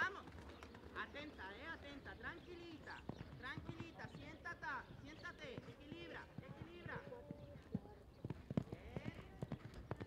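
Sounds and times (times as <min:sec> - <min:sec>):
horse hoofbeats on sand: 0:03.0 - 0:10.0.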